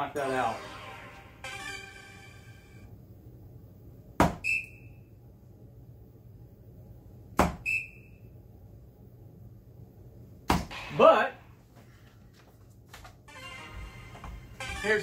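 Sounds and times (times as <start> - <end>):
darts thudding into dartboard: 4.2 - 4.4, 7.4 - 7.6, 10.5 - 11.2.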